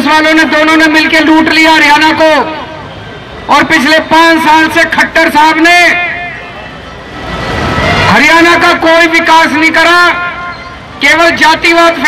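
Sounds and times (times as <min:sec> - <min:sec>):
man speaking over loudspeaker: 0:00.0 - 0:02.8, 0:03.4 - 0:06.7, 0:08.0 - 0:12.0
vehicle engine rumble: 0:06.2 - 0:09.1.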